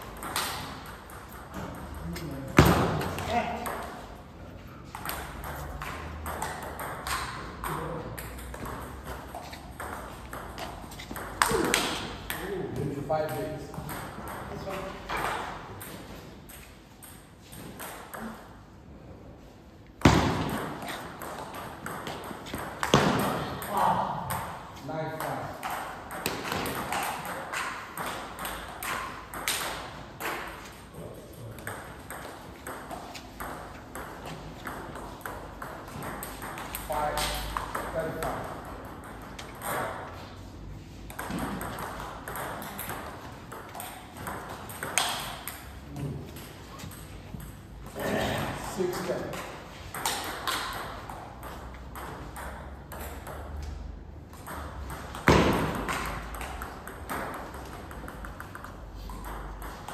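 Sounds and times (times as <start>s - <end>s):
table tennis balls clicking: 0.0s - 18.7s, 19.9s - 48.0s, 49.0s - 59.9s.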